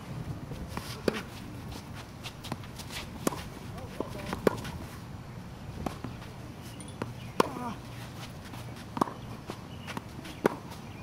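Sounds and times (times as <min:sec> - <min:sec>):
tennis ball struck by racket: 0:03.2 - 0:04.7, 0:07.0 - 0:07.7, 0:08.9 - 0:09.3, 0:09.9 - 0:10.7
quick footsteps on court: 0:07.0 - 0:10.9.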